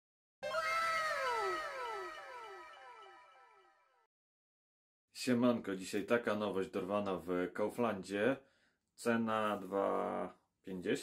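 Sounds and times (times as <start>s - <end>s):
pitched note sliding downward: 0.4s - 3.8s
echo of note: 0.4s - 4.0s.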